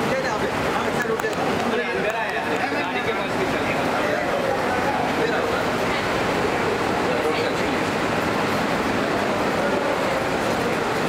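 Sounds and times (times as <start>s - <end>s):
indistinct voices: 0.0s - 11.0s
loud background din: 0.0s - 11.0s.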